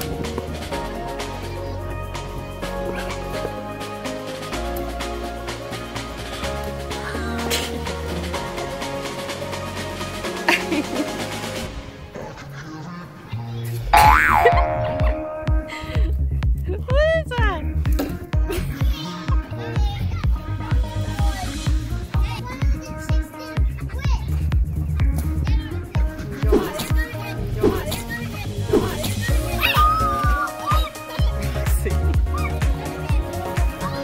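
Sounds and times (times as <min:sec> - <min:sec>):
background music: 0:00.0 - 0:34.0
cartoon boing: 0:13.9 - 0:15.5.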